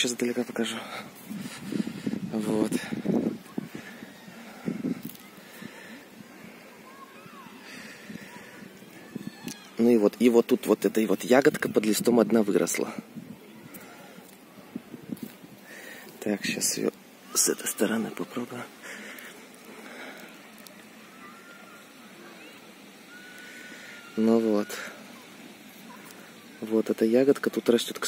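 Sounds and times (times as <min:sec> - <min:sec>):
rustle of leaves and twigs: 0:00.0 - 0:28.0
faint bird chirps: 0:20.0 - 0:26.8.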